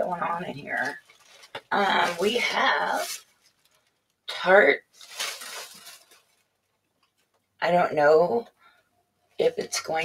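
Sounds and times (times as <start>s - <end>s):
paper packaging rustling: 0.2s - 4.2s, 4.9s - 7.4s.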